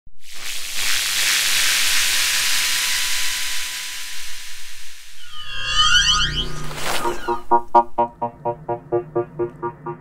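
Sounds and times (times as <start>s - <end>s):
synthesized electronic hiss: 0.2s - 7.8s.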